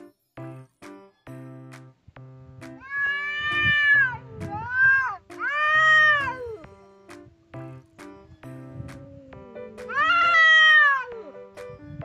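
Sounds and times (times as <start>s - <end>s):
light background music: 0.0s - 12.0s
cat yowling: 2.8s - 6.7s, 7.3s - 11.4s.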